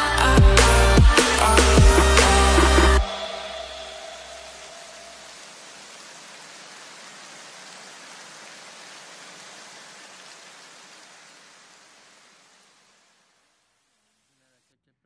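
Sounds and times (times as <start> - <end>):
background music: 0.0 - 5.3
steady hiss: 0.0 - 14.8.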